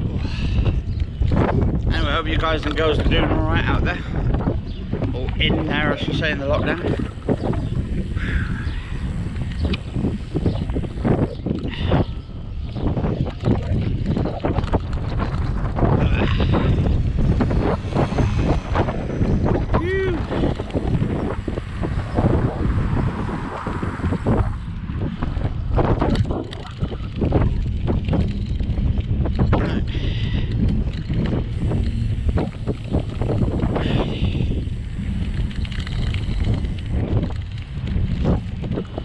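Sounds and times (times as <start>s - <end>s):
wind buffeting microphone: 0.0s - 39.0s.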